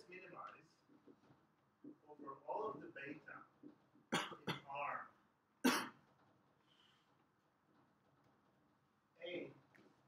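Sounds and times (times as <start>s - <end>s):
person coughing: 4.1s - 4.7s, 5.6s - 6.0s.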